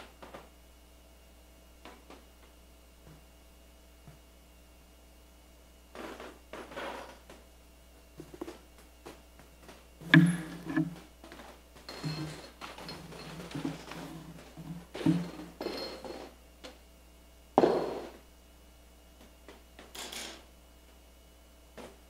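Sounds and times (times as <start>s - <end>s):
wooden knocks: 10.1s - 11.0s, 13.2s - 15.5s.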